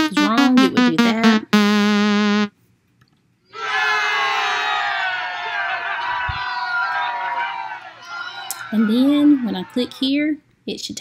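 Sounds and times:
held note: 0.0 - 2.5
children cheering and shouting: 3.6 - 9.4.

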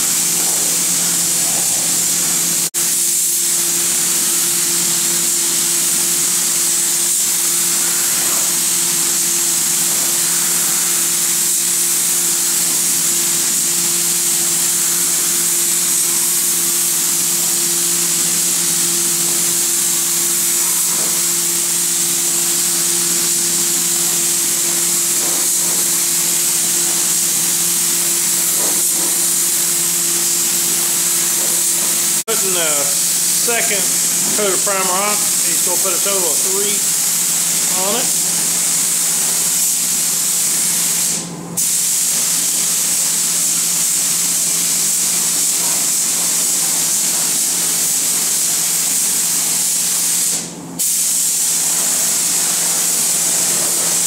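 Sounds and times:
spray gun hissing: 0.0 - 54.0.

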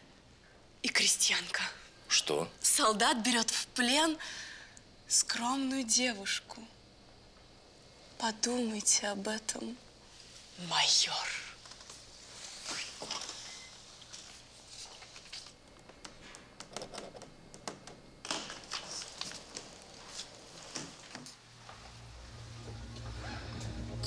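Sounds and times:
quiet clicks and rustles: 11.6 - 12.1, 12.7 - 22.0
low music drone: 21.8 - 24.0.

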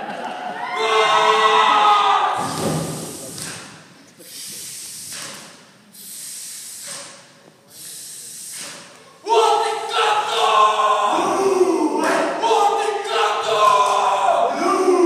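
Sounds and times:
thud: 2.4 - 3.8
forceful hissing exhalations: 4.2 - 8.8
men shouting a chant: 9.2 - 15.0.

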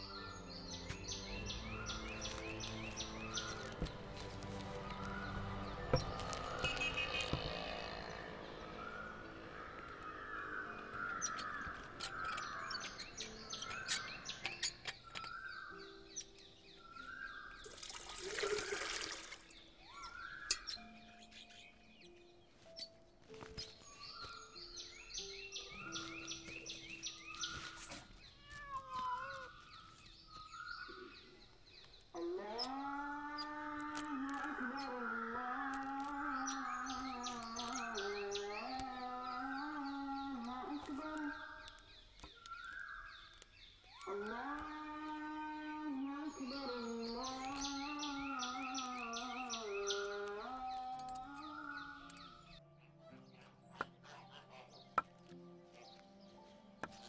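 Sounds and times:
birds chirping: 0.0 - 57.0
soft background music: 0.0 - 57.0.

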